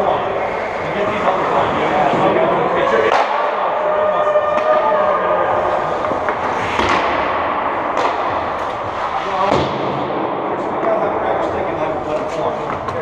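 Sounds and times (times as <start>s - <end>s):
indistinct voices: 0.0s - 13.0s.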